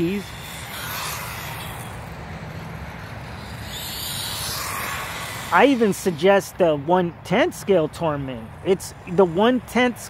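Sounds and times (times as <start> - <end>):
rc truck motor whirring: 0.0 - 10.0
tyres on asphalt: 0.0 - 10.0.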